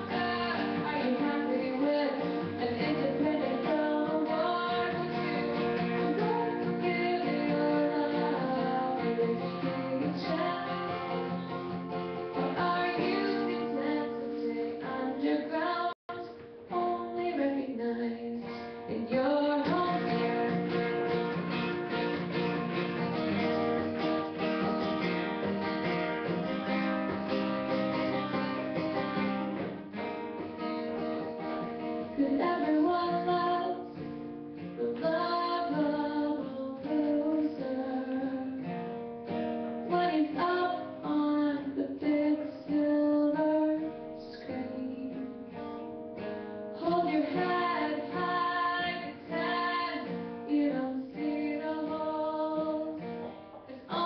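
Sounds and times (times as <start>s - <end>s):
woman singing: 0.0s - 22.0s, 31.5s - 38.9s, 39.7s - 54.0s
strummed acoustic guitar: 0.0s - 54.0s.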